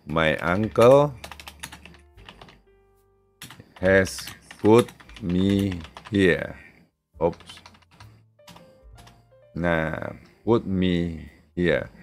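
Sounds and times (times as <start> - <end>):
computer keyboard typing: 0.0 - 2.6, 3.4 - 6.5, 7.2 - 9.2.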